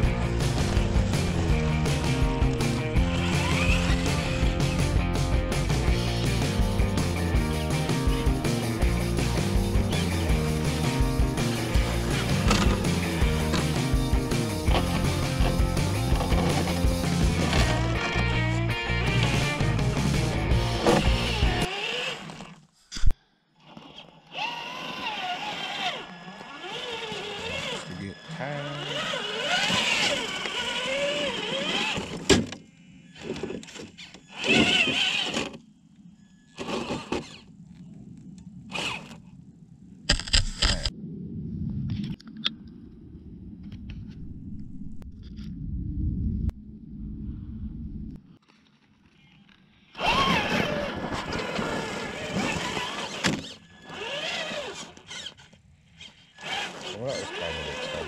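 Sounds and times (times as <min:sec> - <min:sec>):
electric drive running: 0:00.0 - 0:06.8, 0:09.0 - 0:22.5, 0:24.3 - 0:32.2, 0:51.4 - 0:55.3
toy truck driving through snow: 0:02.6 - 0:04.5, 0:11.5 - 0:13.8, 0:20.8 - 0:22.7, 0:23.6 - 0:32.3, 0:33.0 - 0:37.5, 0:38.7 - 0:39.2, 0:48.5 - 0:58.0
indistinct voices: 0:26.0 - 0:30.2, 0:56.8 - 0:58.0.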